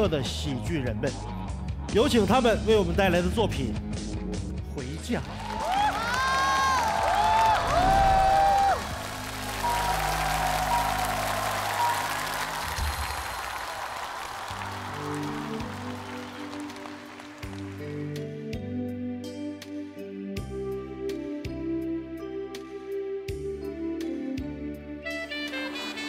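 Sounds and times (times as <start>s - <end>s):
studio audience applauding: 5.0s - 18.2s.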